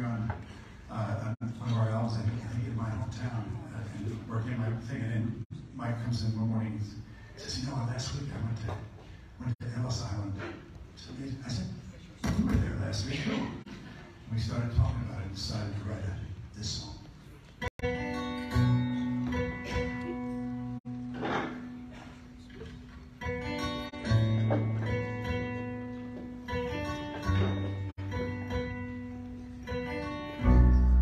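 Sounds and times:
acoustic guitar: 17.4 - 31.0
electric bass notes: 26.8 - 31.0.

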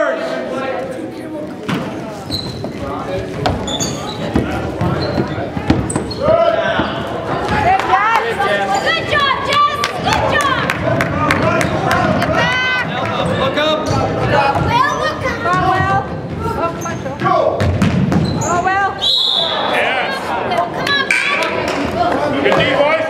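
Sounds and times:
sneakers squeaking on gym floor: 1.7 - 7.6, 14.6 - 19.6
basketball bouncing: 17.2 - 18.5
voices shouting: 18.7 - 22.4.

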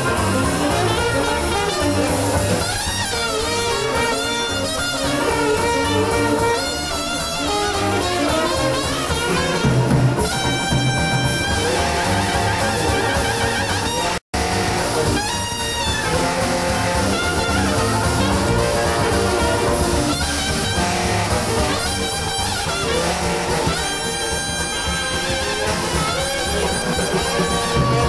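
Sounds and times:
traditional jazz band playing: 0.0 - 28.0.

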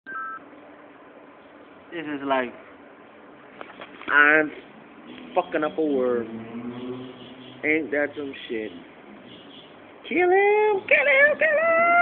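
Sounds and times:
two-tone electronic beep: 0.1 - 0.4
man speaking: 1.9 - 2.6, 5.3 - 6.4, 7.6 - 8.9, 10.1 - 11.9.

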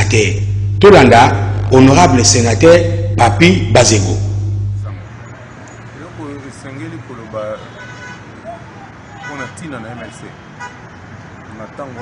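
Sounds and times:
man talking: 0.0 - 5.1
city traffic: 0.0 - 12.0.

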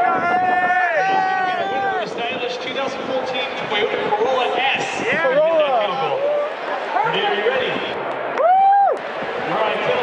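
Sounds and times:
man announcing over public address: 0.0 - 8.0, 9.5 - 10.0.

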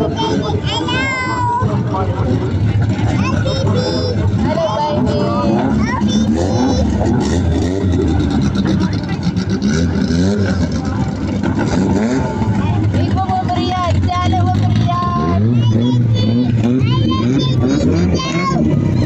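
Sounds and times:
people calling and chattering: 0.0 - 19.0
race car engines at low revs: 0.0 - 19.0.

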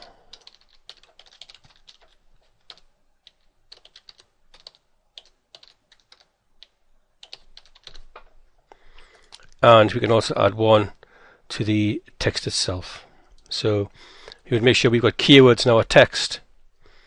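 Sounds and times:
computer keyboard typing: 0.0 - 8.4.

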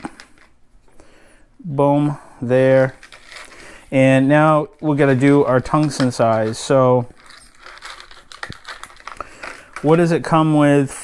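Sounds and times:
person speaking: 1.6 - 7.4, 9.3 - 11.0
crinkly plastic rustling: 2.6 - 11.0.

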